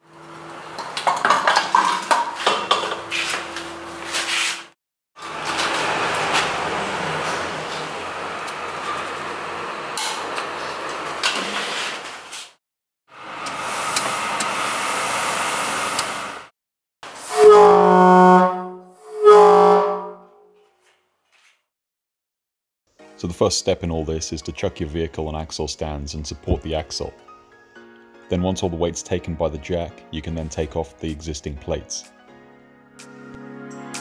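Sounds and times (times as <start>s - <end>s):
air horn blasts: 17.2s - 20.5s.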